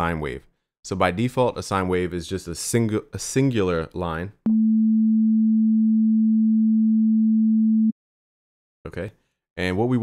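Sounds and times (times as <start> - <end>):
steady sine wave tone: 4.5 - 7.9.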